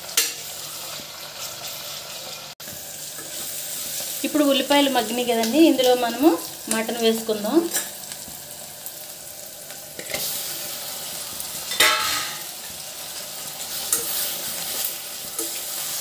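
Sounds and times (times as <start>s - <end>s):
onions sizzling in a pot: 0.0s - 16.0s.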